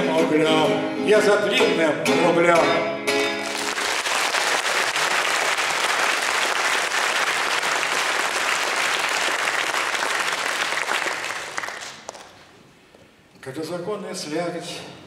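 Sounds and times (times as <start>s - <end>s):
audience applauding: 3.4s - 12.5s.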